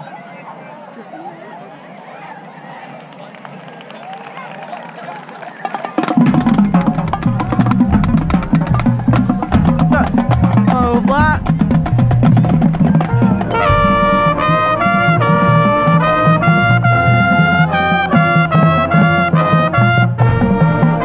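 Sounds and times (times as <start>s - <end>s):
marching drums and percussion: 5.6s - 21.0s
brass playing held chords: 6.4s - 21.0s.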